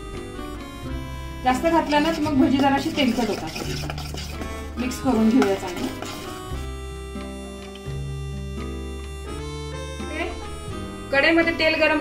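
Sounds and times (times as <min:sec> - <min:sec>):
background music: 0:00.0 - 0:12.0
spoon stirring batter in a bowl: 0:01.4 - 0:06.7.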